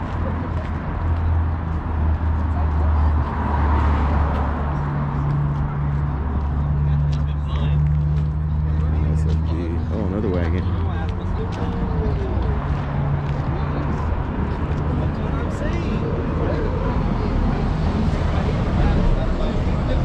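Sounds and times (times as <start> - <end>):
crowd voices: 0.0 - 20.0.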